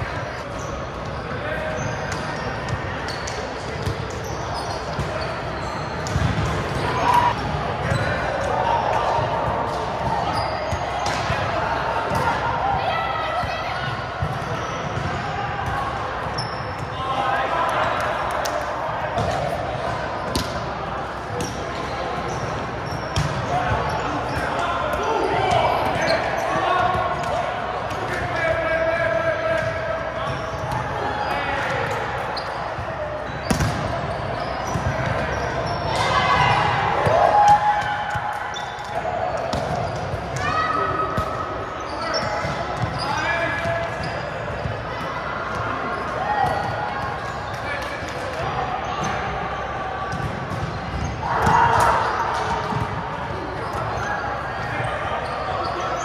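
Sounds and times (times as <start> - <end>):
shoes squeaking on floor: 0.6 - 7.0, 10.2 - 10.8, 16.4 - 16.8, 32.3 - 35.9
players shouting: 5.1 - 20.3, 22.2 - 32.5, 33.1 - 56.0.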